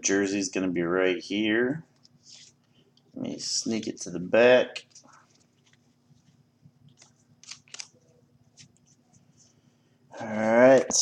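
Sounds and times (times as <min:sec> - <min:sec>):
trading cards shuffling: 0:04.9 - 0:09.4.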